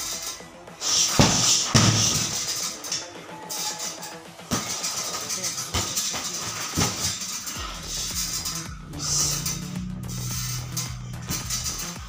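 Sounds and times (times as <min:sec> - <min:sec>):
background music: 0:00.0 - 0:12.0
kicks thudding on punching bag: 0:01.1 - 0:02.4, 0:05.7 - 0:07.2.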